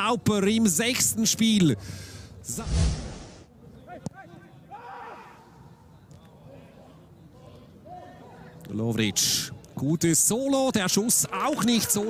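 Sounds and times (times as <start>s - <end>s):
low thump with rushing noise: 2.6s - 3.4s.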